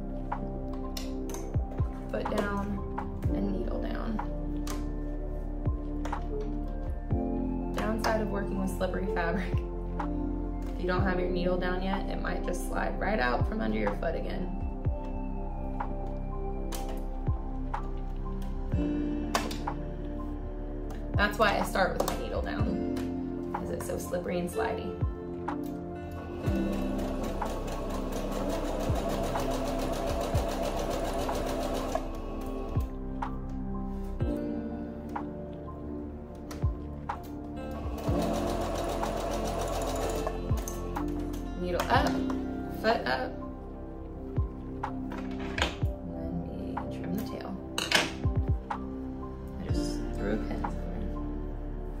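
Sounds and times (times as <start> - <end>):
background music: 0.0 - 52.0
sewing machine stitching: 26.5 - 32.8, 37.7 - 40.8.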